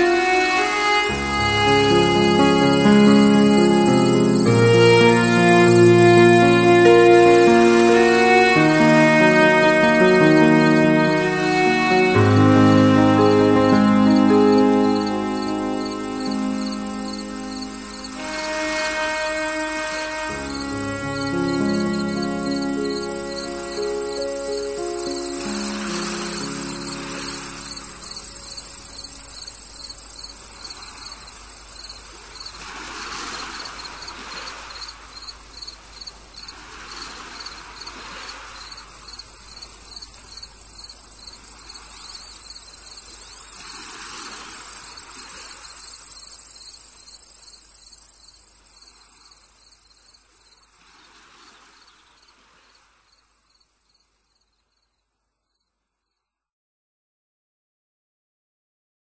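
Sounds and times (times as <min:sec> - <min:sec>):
slow instrumental music: 0:00.0 - 0:29.2
crickets chirping: 0:00.0 - 0:56.2.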